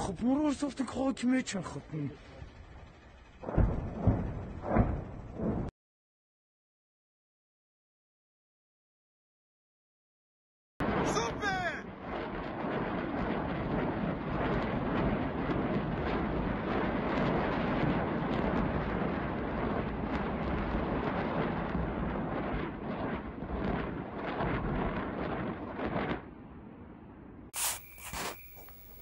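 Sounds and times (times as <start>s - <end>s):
distant rocket artillery firing: 3.4s - 5.7s, 10.8s - 26.4s.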